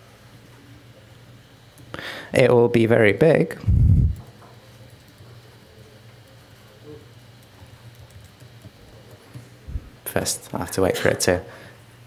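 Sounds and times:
steady low hum: 0:00.0 - 0:12.0
keyboard typing clicks: 0:07.4 - 0:09.3.

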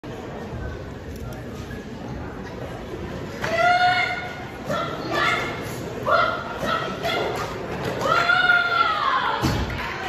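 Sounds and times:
person shouting in a hall: 0:03.4 - 0:09.5.

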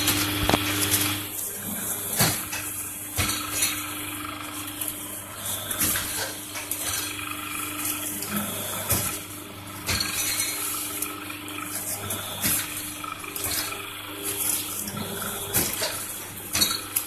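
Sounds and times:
press electric hum: 0:00.0 - 0:17.0.

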